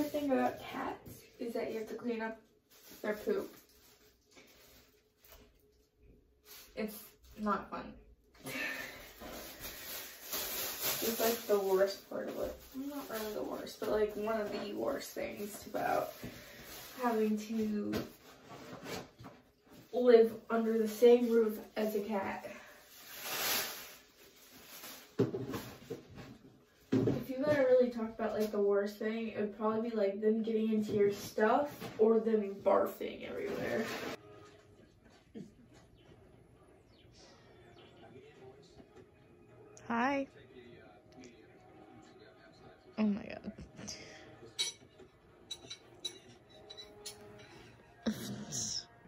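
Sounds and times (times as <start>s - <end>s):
woman speaking: 0.0s - 2.4s, 6.8s - 8.0s, 11.0s - 16.2s, 39.8s - 40.3s, 43.0s - 44.1s, 48.1s - 48.9s
plastic bag rustling: 0.0s - 5.7s, 8.5s - 26.4s.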